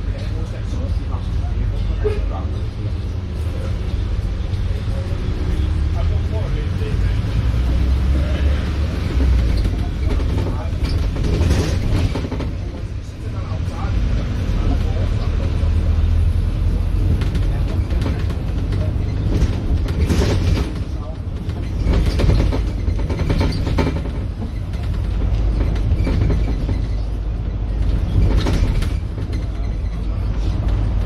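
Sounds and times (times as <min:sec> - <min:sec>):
bus drivetrain and road rumble: 0:00.0 - 0:31.0.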